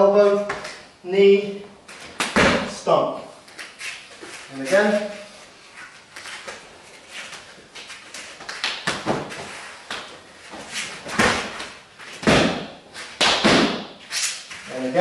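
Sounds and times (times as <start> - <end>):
bare feet on mat: 1.8 - 15.0
foot stomp: 1.9 - 2.8, 8.4 - 14.0
strikes thudding on body: 12.2 - 14.0.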